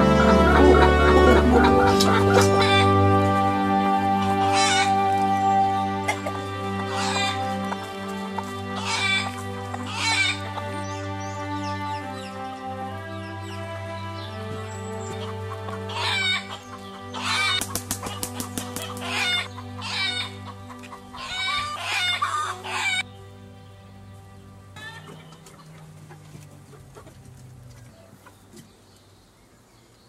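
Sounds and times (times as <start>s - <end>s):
music of long held notes: 0.0s - 28.3s
chickens clucking: 0.0s - 29.6s.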